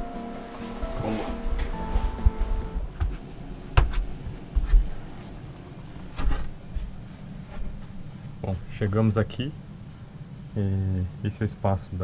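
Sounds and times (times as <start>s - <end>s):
background music tone: 0.0s - 3.7s
footsteps and camera handling thumps: 2.8s - 5.0s.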